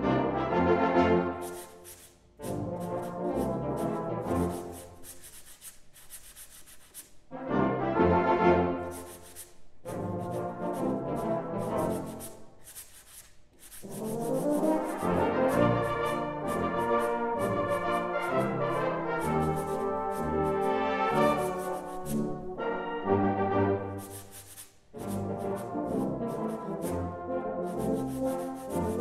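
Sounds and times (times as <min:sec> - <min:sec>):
sandpaper blocks rubbed together: 0:01.4 - 0:07.3, 0:08.8 - 0:22.5, 0:24.0 - 0:27.0, 0:27.6 - 0:29.0
brass band playing: 0:07.3 - 0:08.9, 0:09.9 - 0:12.0, 0:13.9 - 0:24.0, 0:25.0 - 0:29.0.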